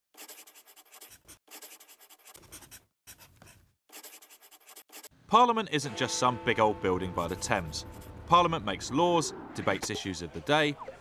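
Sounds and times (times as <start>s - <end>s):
marker pen scratching on paper: 0.2s - 5.1s, 7.2s - 8.2s.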